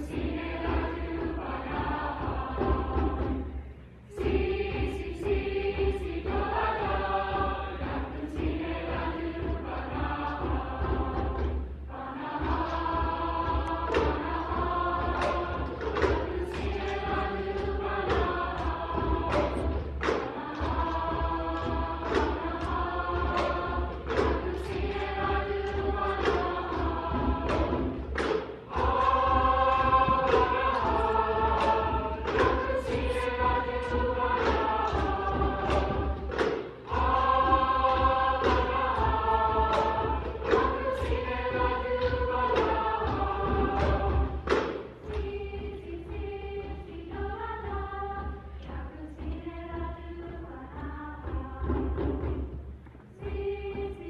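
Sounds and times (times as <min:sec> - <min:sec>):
choir singing sustained chords: 0:00.0 - 0:54.0
sharp percussive beats: 0:00.0 - 0:54.0.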